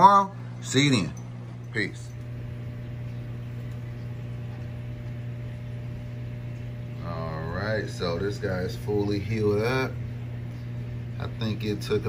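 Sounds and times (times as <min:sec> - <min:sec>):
aquarium pump hum: 0:00.0 - 0:12.0.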